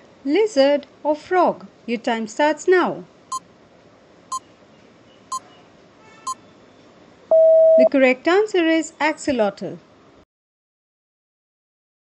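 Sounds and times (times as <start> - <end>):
timer short beeps: 7.3 - 7.9.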